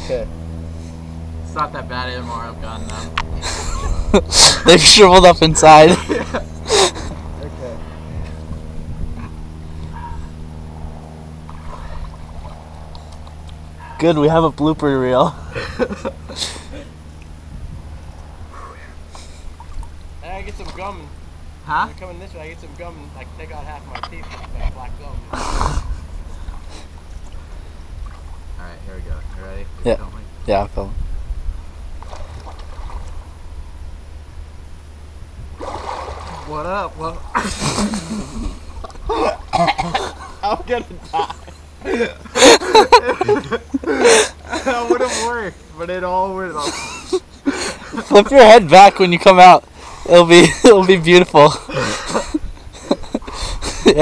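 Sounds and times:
motor humming: 0.0 - 30.6
faint lapping water: 2.3 - 14.3, 18.0 - 21.6, 25.2 - 29.7, 31.9 - 33.7, 35.5 - 45.5
wind rumbling on microphone: 6.4 - 13.9, 17.3 - 21.6, 24.2 - 36.5, 52.1 - 54.0
rushing splash of water: 35.6 - 36.6.

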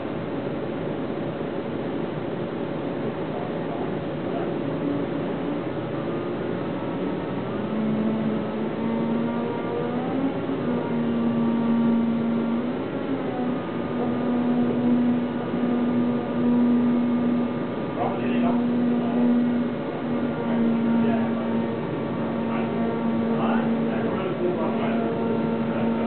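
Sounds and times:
mechanical hum: 0.0 - 26.0
forklift motor whining: 5.4 - 26.0.

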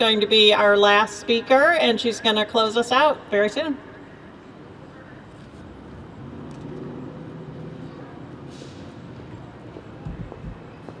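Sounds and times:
passing road vehicle rumble: 5.3 - 11.0.

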